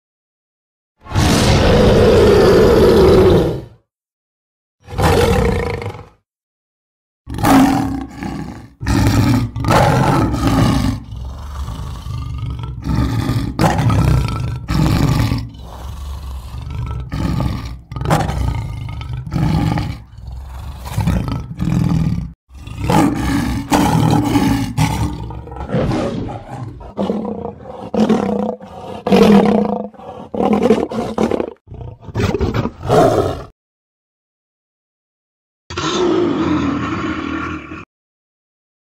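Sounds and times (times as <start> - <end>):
cartoon lion roaring: 1.0 - 3.8, 4.8 - 6.2, 7.3 - 33.5, 35.7 - 37.9.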